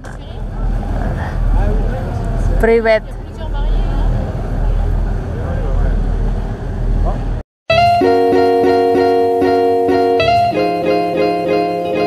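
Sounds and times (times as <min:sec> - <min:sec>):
boat engine low rumble: 0:00.0 - 0:07.4.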